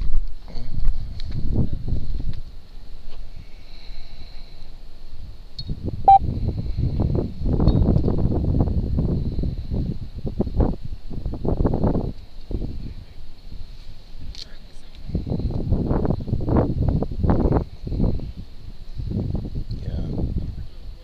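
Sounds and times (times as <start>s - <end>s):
rumbling and rustling on microphone: 0.0s - 21.0s.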